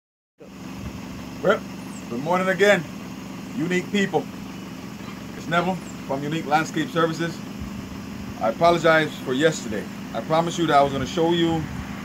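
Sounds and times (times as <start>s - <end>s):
car engine idling: 0.4s - 12.0s
man speaking: 1.4s - 2.9s, 3.6s - 4.3s, 5.4s - 7.4s, 8.4s - 11.7s.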